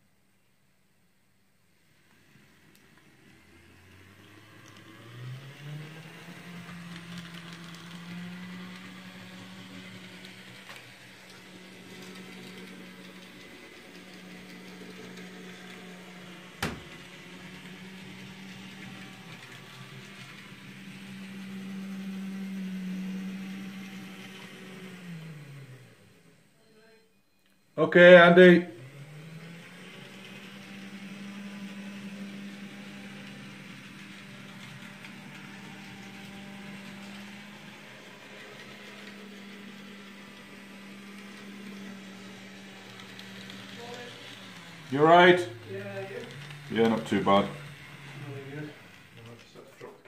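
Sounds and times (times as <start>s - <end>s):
model locomotive motor whine: 1.7s - 50.0s.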